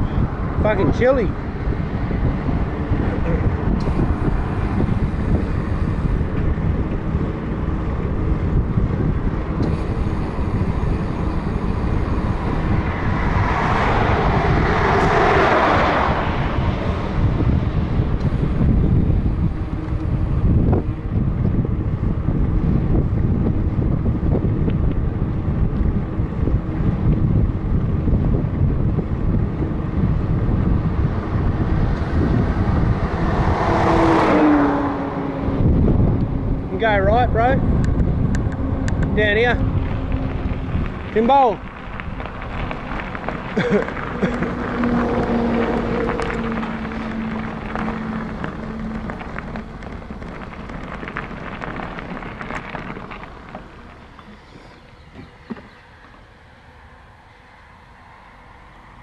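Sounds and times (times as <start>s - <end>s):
road noise: 0.0s - 59.0s
vehicle passing: 0.0s - 59.0s
wind buffeting microphone: 0.0s - 59.0s.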